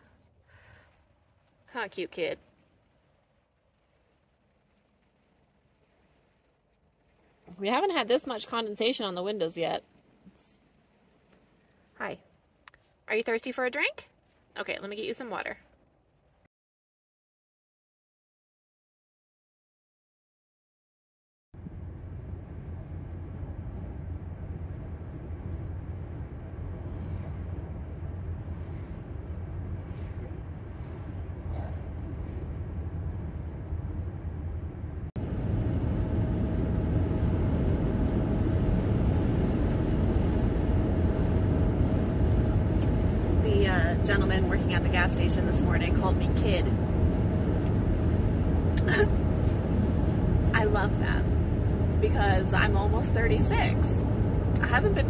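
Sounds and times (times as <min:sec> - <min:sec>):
road and engine rumble inside car: 0:03.8 - 0:09.7, 0:21.6 - 0:55.0.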